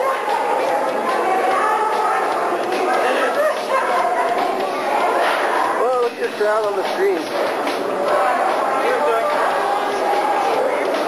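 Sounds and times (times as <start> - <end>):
background chatter: 0.0 - 11.0
people talking: 0.0 - 11.0.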